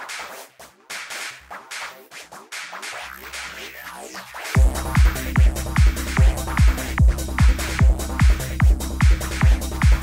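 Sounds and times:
kick drum: 4.6 - 10.0.

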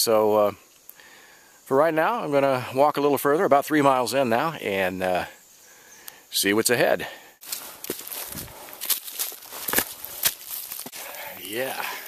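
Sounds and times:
footsteps on dry leaves: 7.4 - 11.2.

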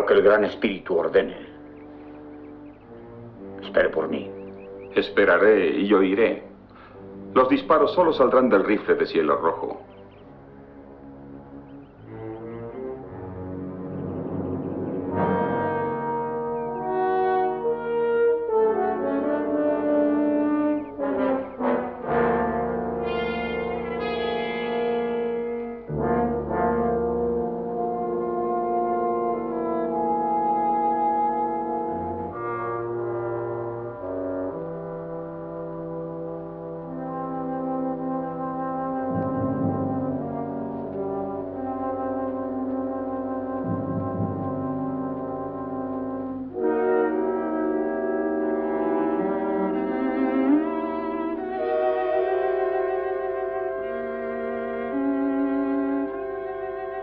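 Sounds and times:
dramatic orchestral brass music: 0.0 - 57.0.

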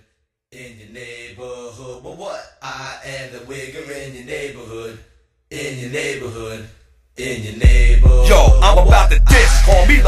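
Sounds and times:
chant-like sung vocals in hip-hop track: 0.0 - 10.0.

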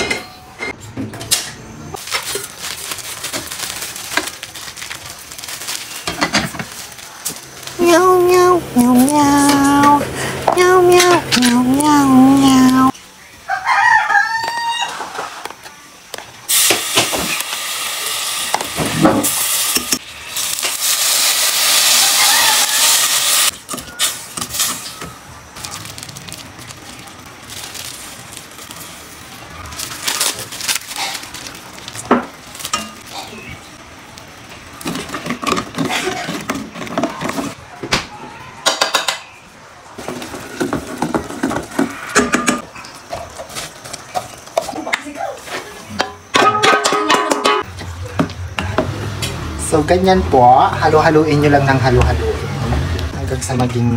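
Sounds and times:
rooster crowing: 13.4 - 15.4, 22.0 - 23.0
liquid hissing in hot pot: 16.5 - 24.9.

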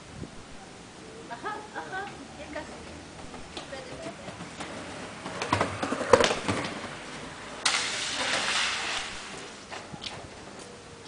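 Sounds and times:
skateboard rolling on rough concrete: 1.6 - 10.8
skateboard clacks and knocks: 3.7 - 7.1.

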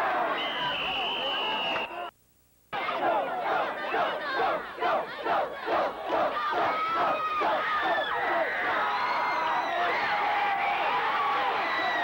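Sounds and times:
crowd of spectators yelling: 2.8 - 12.0.

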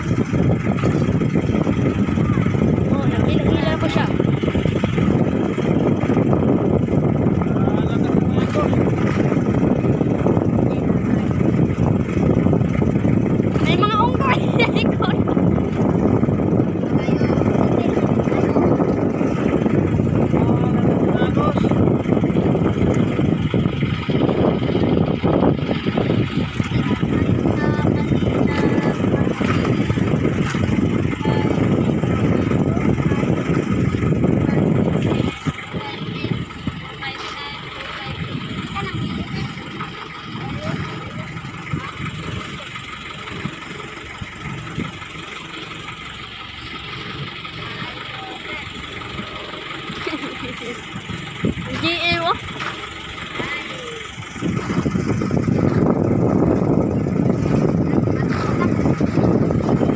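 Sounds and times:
boat engine running: 0.0 - 59.9
heavy low rumble: 0.0 - 59.9.

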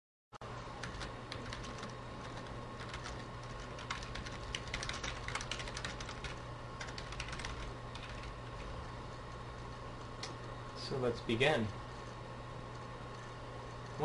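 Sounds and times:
steady low hum: 0.4 - 14.0.

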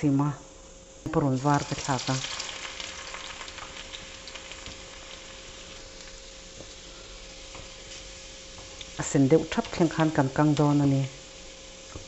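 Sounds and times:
garlic sizzling in hot oil: 1.1 - 11.9.

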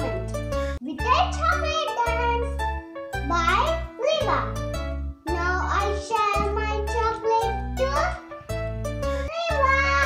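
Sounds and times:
music backing track: 0.0 - 10.0
girl singing: 9.3 - 10.0.

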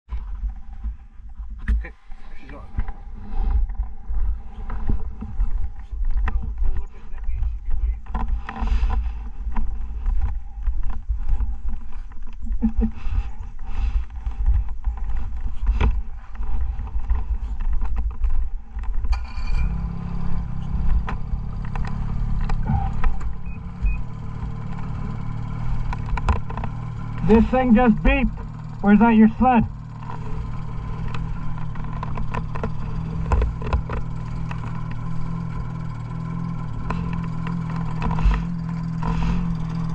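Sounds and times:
snowmobile engine running: 0.2 - 39.9.

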